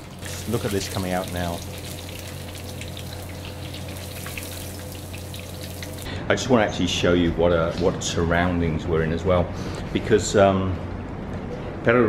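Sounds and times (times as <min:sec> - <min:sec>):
oil bubbling and sizzling: 0:00.0 - 0:06.1.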